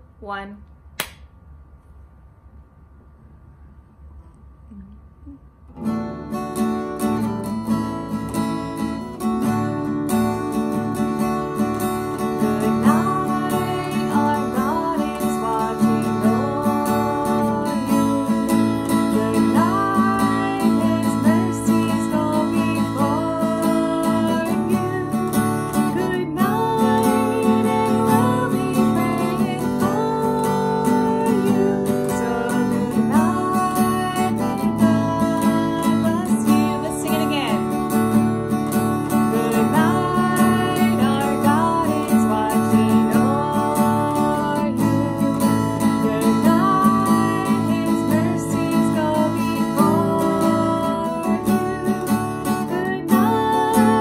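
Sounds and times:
acoustic guitar strumming: 5.7 - 54.0
woman singing: 11.5 - 38.1, 39.0 - 54.0.

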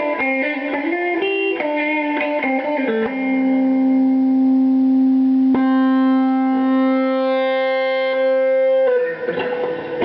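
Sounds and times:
electric guitar note sustaining: 0.0 - 10.0.

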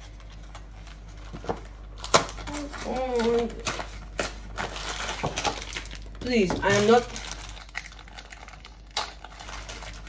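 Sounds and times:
cardboard box crinkling and tearing: 0.5 - 10.0.

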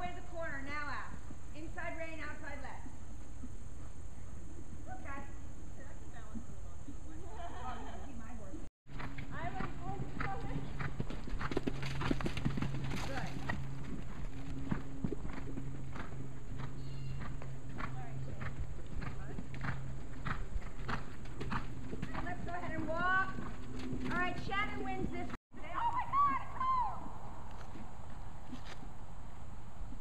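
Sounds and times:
steady low hum: 0.0 - 25.7
horse hooves on sand: 8.9 - 30.0.

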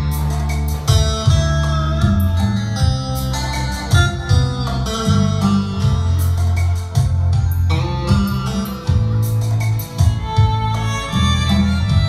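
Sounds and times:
electronic keyboard music: 0.0 - 12.0.

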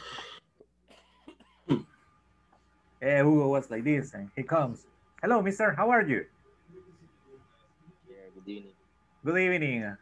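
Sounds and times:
person coughing: 0.9 - 1.9.

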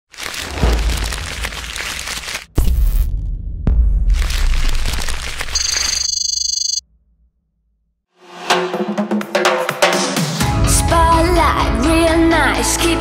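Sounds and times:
crashing and crackling hits: 0.1 - 2.5.

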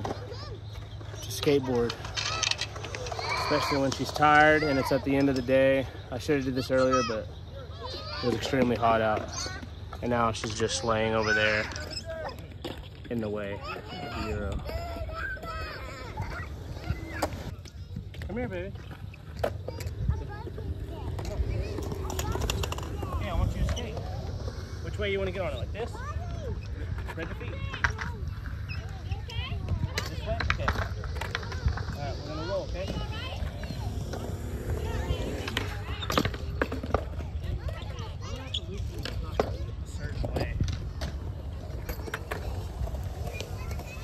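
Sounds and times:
skateboard wheels rumbling: 0.0 - 44.0
voices: 0.0 - 44.0
skateboard clacks: 11.2 - 44.0.

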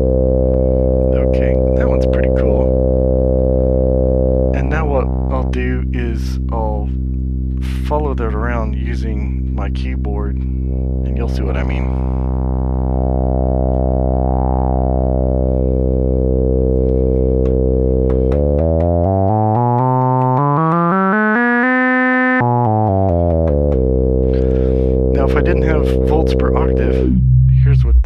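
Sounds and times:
buzzy analog synth drone: 0.0 - 28.0.

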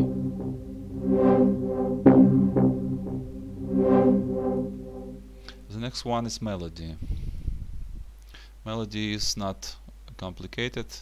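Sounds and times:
synthesizer chords: 0.0 - 5.5.

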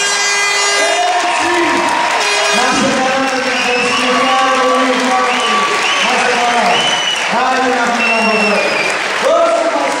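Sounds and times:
audience applause: 0.7 - 10.0
man's voice over pa: 2.4 - 10.0.

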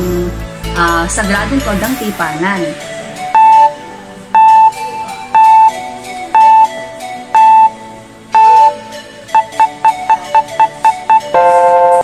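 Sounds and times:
background music with plucked guitar: 0.0 - 12.0
electronic beep: 3.3 - 12.0.

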